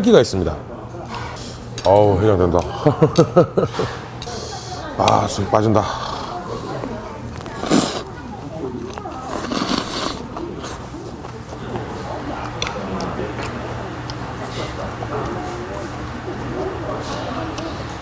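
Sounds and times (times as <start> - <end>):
faint background voices: 0.6 - 18.0
noodles slurped: 6.0 - 8.2, 8.8 - 11.0.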